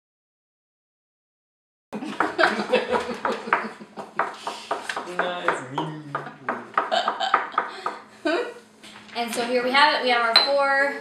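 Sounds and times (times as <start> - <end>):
people laughing: 2.0 - 4.6, 5.6 - 8.5.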